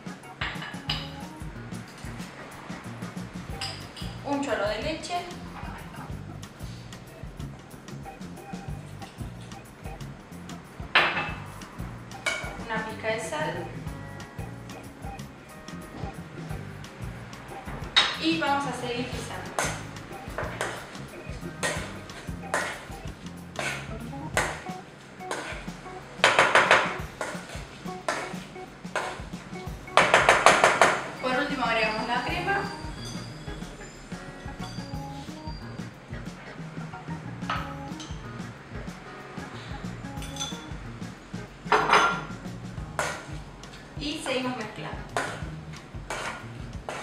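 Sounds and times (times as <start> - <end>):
background music: 0.0 - 47.0
masher knocking and scraping pot: 45.0 - 47.0.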